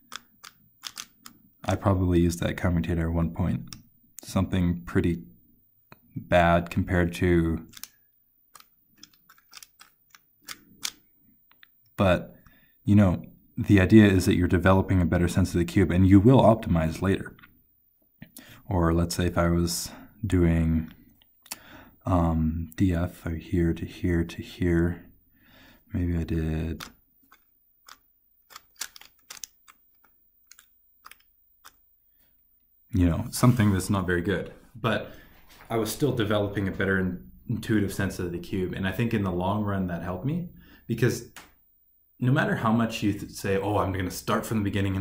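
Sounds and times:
puzzle cube clicking: 0.0s - 1.5s, 3.6s - 3.9s, 7.6s - 11.8s, 26.8s - 31.8s.

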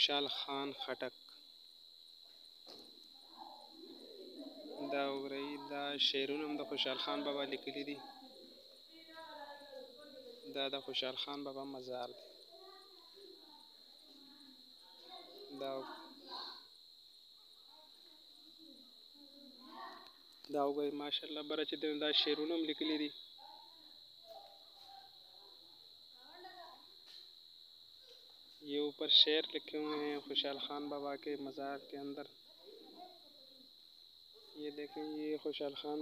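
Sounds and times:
cricket trilling: 0.0s - 36.0s.

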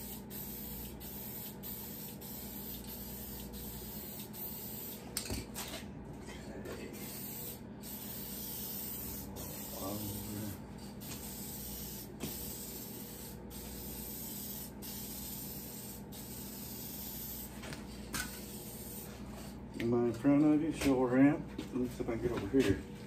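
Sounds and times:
spray paint can hissing: 0.0s - 5.0s, 7.0s - 17.6s, 18.2s - 19.1s.

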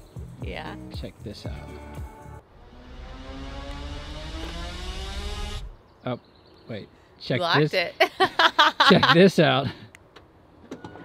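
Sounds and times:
electric door motor whine: 2.5s - 5.8s.

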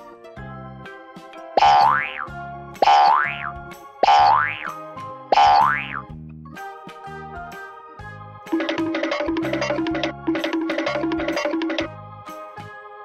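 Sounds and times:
children's music: 0.0s - 13.0s
cartoon boing: 1.6s - 4.8s, 5.4s - 6.1s.

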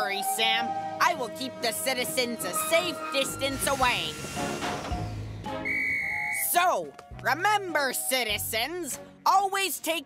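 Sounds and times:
high whistle blast: 2.4s - 6.6s.

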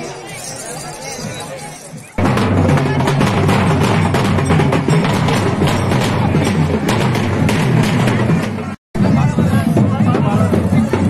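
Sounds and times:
loud drum-led music: 2.2s - 11.0s.

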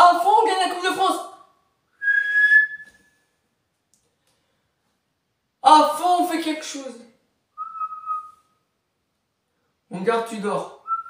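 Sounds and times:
man whistling high note: 2.0s - 3.2s, 7.6s - 8.5s.

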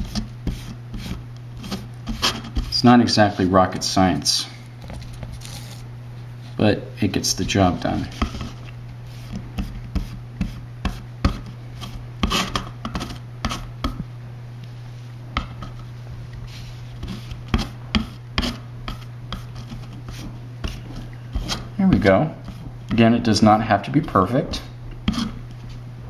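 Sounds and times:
steady low hum: 0.0s - 26.0s
sponge brush tapping and scraping: 7.4s - 14.0s, 16.5s - 23.0s.

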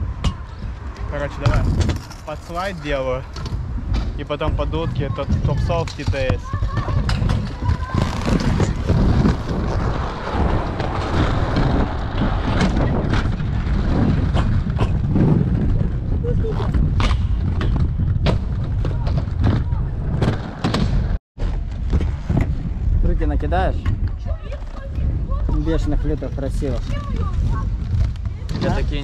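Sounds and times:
skate wheels rolling on concrete: 0.0s - 29.0s
wind rumble on microphone: 0.0s - 29.0s.

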